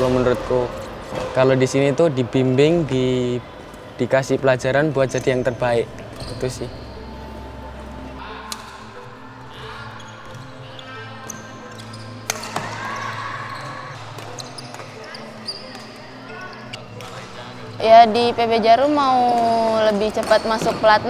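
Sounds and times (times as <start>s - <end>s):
shoes squeaking on court: 4.8s - 7.5s, 9.7s - 21.0s
racket hitting shuttlecock: 12.2s - 13.2s.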